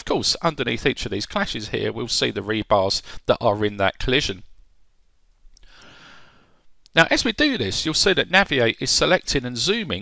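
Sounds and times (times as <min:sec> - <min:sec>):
person speaking: 0:00.0 - 0:04.6, 0:06.8 - 0:10.0
person breathing in: 0:05.6 - 0:06.6.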